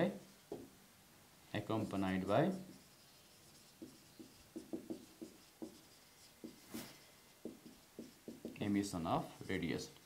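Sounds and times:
marker writing on whiteboard: 0:00.4 - 0:00.7, 0:01.7 - 0:10.0.

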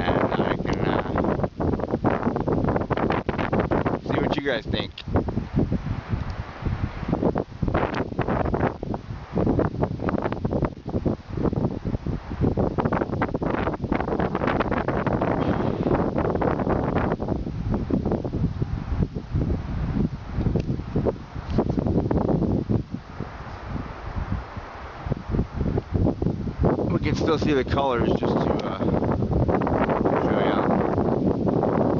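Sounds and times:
wind buffeting microphone: 0:00.0 - 0:31.9.

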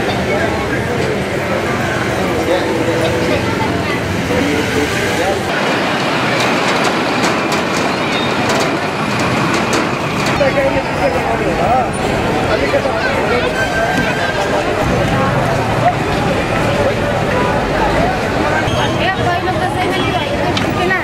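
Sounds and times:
heavy traffic: 0:00.0 - 0:21.0
voices chattering: 0:00.0 - 0:21.0.

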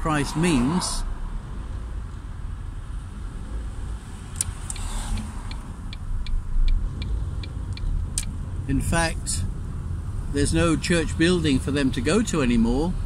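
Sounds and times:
car road and engine rumble: 0:00.0 - 0:13.0
turn signal ticking: 0:04.3 - 0:08.6.

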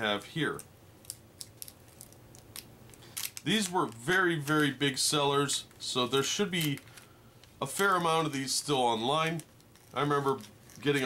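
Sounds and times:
paper wrapper crinkling: 0:01.0 - 0:04.9, 0:05.6 - 0:07.1.

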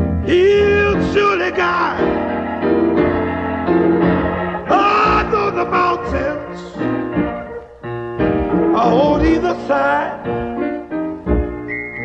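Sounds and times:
keyboard chords: 0:00.0 - 0:12.0
person singing gospel: 0:00.2 - 0:02.4, 0:04.2 - 0:07.2, 0:08.7 - 0:10.3.

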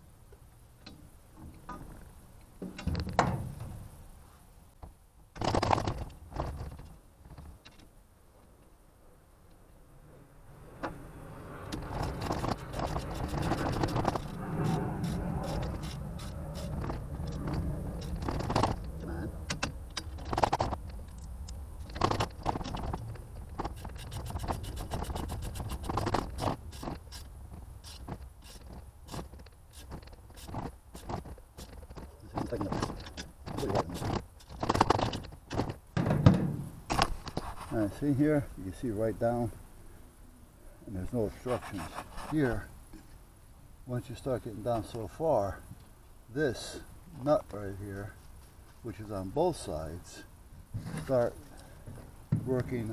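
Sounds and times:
low rumble: 0:10.3 - 0:21.9
ratchet clinking and scraping: 0:11.7 - 0:37.5.

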